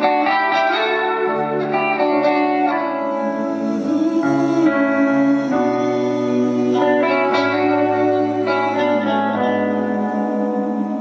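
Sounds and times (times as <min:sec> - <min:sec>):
live band playing slow ballad: 0:00.0 - 0:11.0.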